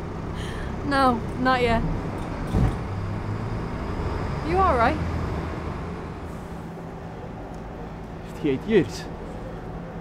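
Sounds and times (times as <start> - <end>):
low rumble of city traffic: 0.0 - 10.0.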